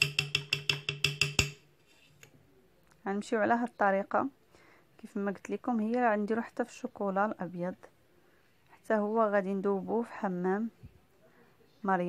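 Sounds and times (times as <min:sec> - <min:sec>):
rapid wood block taps: 0:00.0 - 0:01.6.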